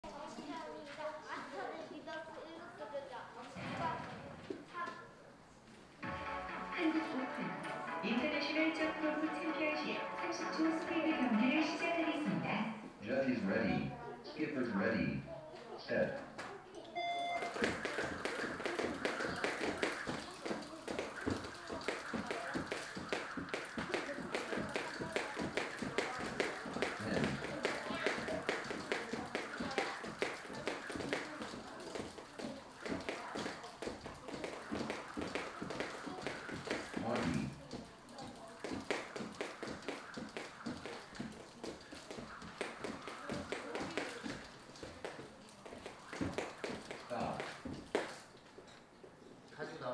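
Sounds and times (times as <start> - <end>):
jump ropes ticking on floor: 17.4 - 48.4.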